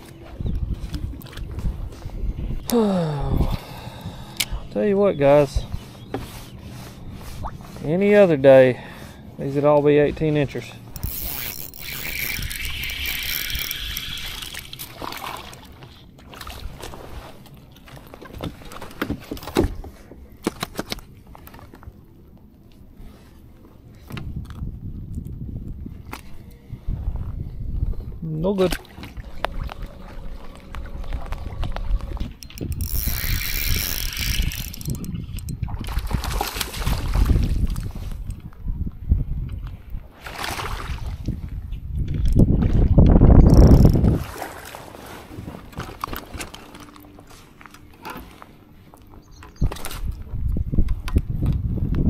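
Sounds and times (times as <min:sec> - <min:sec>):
wind gusts on microphone: 0:00.0 - 0:08.0, 0:24.1 - 0:28.4, 0:29.2 - 0:44.4, 0:49.6 - 0:52.0
fishing tackle clicking and rattling: 0:10.9 - 0:15.0, 0:32.1 - 0:36.0, 0:42.1 - 0:44.1.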